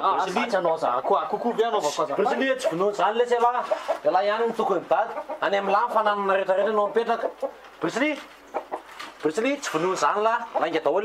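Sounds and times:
man talking: 0.0 - 8.3, 9.2 - 11.0
chickens calling: 0.0 - 11.0.

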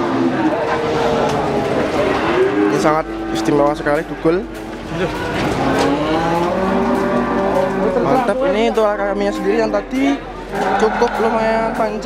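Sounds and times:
cow mooing: 0.0 - 9.0, 10.5 - 12.0.

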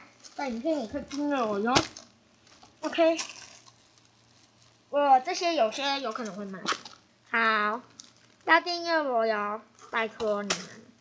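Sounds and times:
girl speaking: 0.0 - 1.8, 2.8 - 3.4, 4.9 - 11.0.

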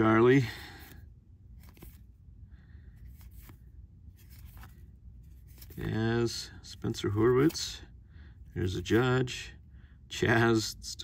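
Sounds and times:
paper cards shuffling: 0.6 - 2.2, 3.0 - 7.8.

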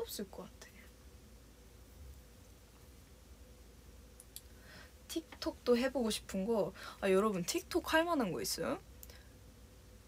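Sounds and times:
faint steady hum: 0.0 - 10.0
faint clicks: 4.2 - 4.5, 9.0 - 9.2.

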